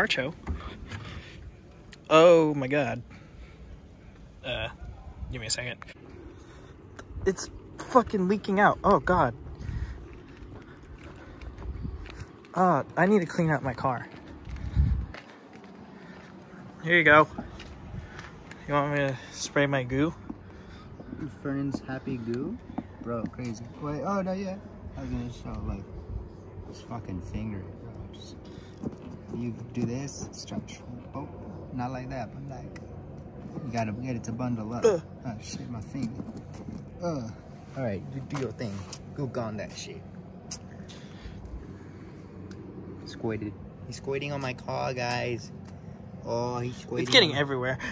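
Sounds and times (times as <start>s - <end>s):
low background hum: 0.0s - 47.9s
footsteps on concrete: 8.8s - 23.8s.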